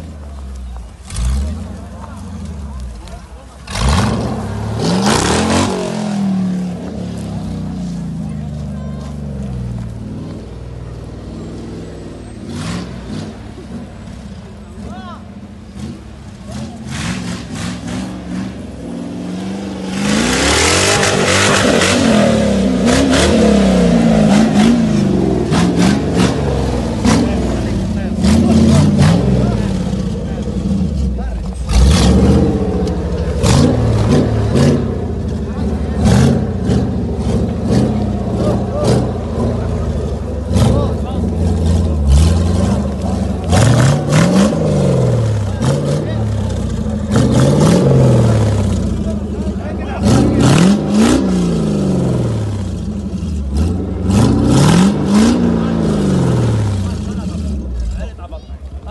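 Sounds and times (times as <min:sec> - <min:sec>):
off-road engine revving hard: 0:00.9 - 0:08.0, 0:10.0 - 0:14.0, 0:14.7 - 0:58.9.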